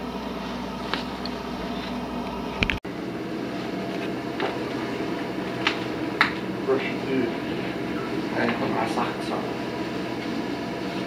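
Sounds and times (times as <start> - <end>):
muffled leaf vacuum drone: 0.0 - 11.0.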